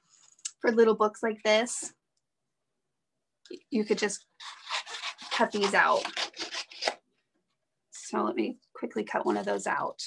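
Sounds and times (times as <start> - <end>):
scissors snipping paper: 4.4 - 7.0.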